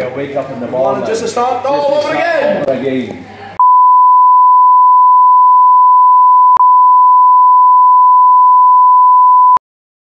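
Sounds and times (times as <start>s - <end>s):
single-pitch test tone: 3.6s - 9.6s.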